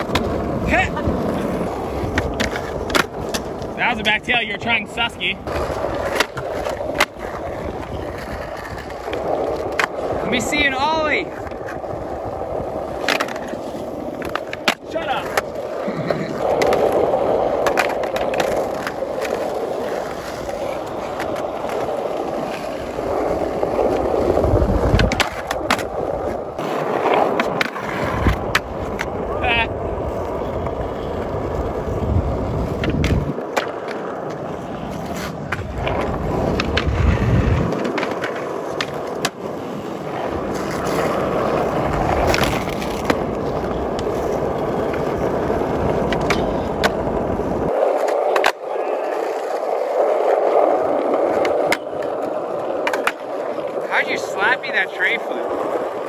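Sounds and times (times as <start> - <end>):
skateboard clacking on ground: 0.0 - 56.0
skateboard wheels rolling on concrete: 0.0 - 56.0.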